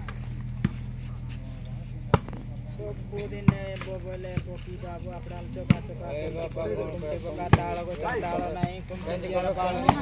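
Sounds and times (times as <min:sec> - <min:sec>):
hands slapping volleyball: 0:00.0 - 0:00.9, 0:02.1 - 0:02.4.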